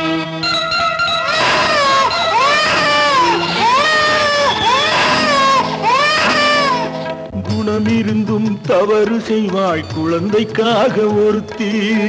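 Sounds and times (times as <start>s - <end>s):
infant crying: 1.2s - 7.1s.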